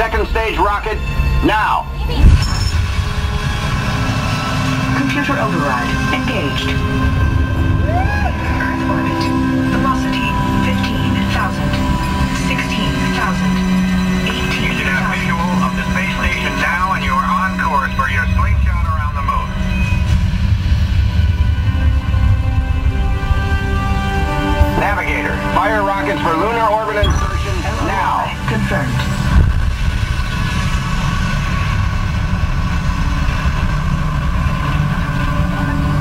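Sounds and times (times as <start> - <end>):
background music: 0.0 - 36.0
low rumble of spacecraft engines: 0.0 - 36.0
indistinct voices: 3.5 - 20.2, 21.6 - 30.0.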